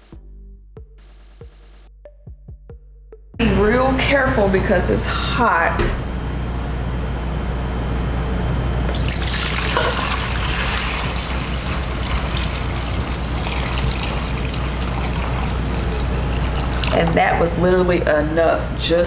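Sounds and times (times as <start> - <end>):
water pouring into metal bowl: 8.9 - 17.2.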